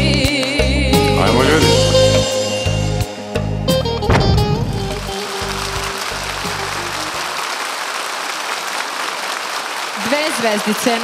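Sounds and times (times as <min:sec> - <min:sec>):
backing music held low notes: 0:00.0 - 0:07.2
audience applause: 0:04.2 - 0:11.0.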